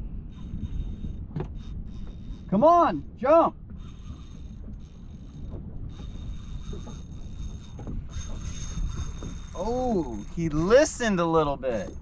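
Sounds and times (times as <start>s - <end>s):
wind rumble on microphone: 0.0s - 12.0s
fishing reel spinning under load: 0.3s - 2.6s, 3.8s - 12.0s.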